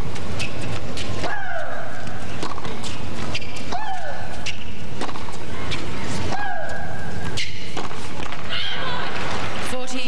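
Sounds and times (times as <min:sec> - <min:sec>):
tennis ball struck by rackets: 0:02.4 - 0:05.4, 0:07.3 - 0:08.5.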